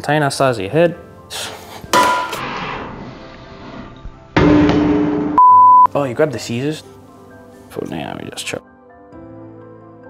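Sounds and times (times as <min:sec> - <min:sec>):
loud steady beep: 0:05.4 - 0:05.9.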